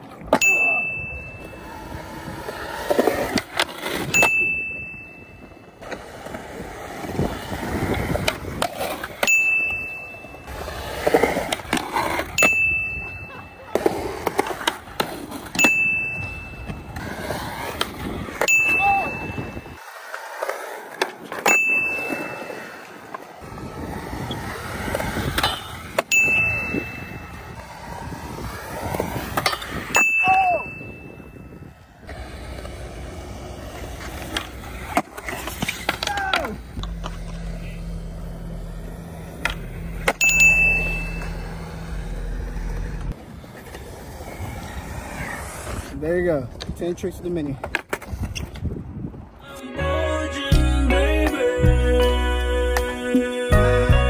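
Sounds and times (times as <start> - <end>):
skateboard wheels rolling on concrete: 0.0 - 54.0
high bell-like ding: 0.4 - 1.7, 4.2 - 5.6, 9.2 - 10.5, 12.4 - 13.6, 15.6 - 16.8, 18.5 - 19.8, 21.5 - 22.9, 26.1 - 27.4, 30.0 - 31.6, 40.2 - 41.4.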